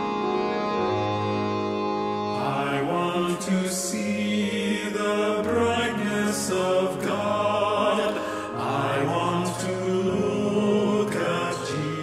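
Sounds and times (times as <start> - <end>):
choir singing a hymn: 0.0 - 12.0
sustained keyboard chords: 0.0 - 12.0.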